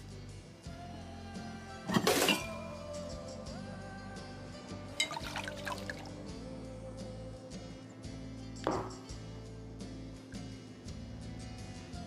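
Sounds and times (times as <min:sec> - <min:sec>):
background music sustained tones: 0:00.0 - 0:12.0
glass clinks: 0:05.0 - 0:05.6, 0:08.7 - 0:09.0
wine pouring into glass: 0:05.0 - 0:06.1
bottle knocking on table: 0:08.6 - 0:09.1.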